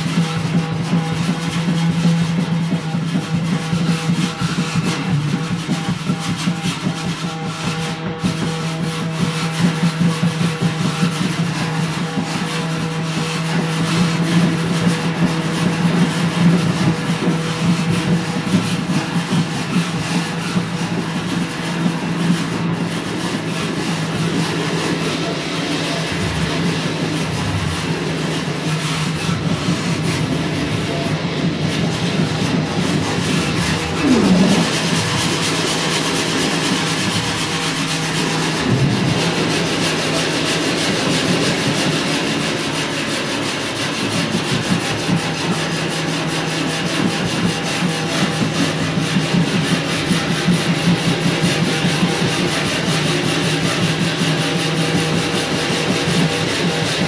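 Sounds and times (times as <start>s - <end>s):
rubbing and scraping textures: 0.0s - 57.0s
steady low hum: 12.6s - 41.5s
swooping pitch glide: 18.0s - 40.7s.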